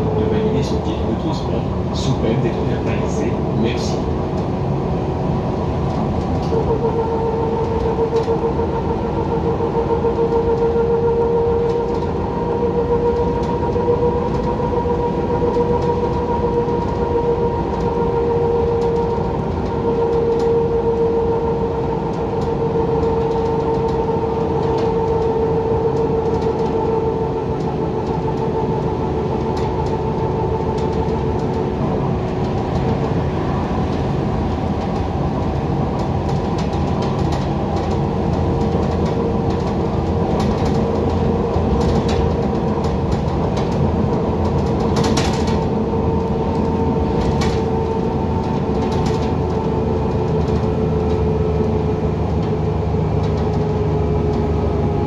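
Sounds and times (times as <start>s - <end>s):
bus engine and tyres rumbling: 0.0s - 55.0s.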